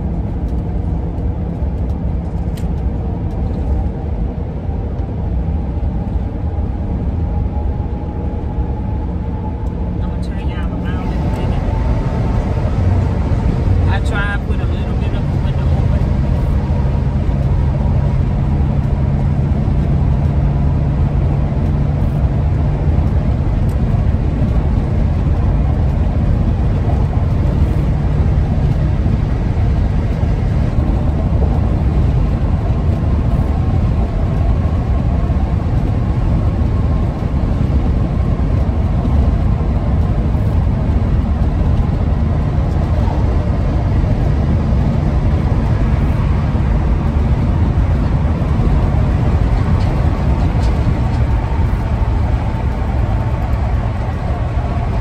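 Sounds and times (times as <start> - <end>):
low hum: 0.0 - 55.0
road and engine rumble: 0.0 - 55.0.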